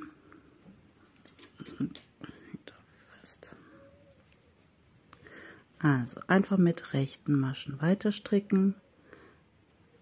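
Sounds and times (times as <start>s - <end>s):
metal knitting needles clicking: 1.2s - 2.1s
whisper-like voice: 1.6s - 4.2s.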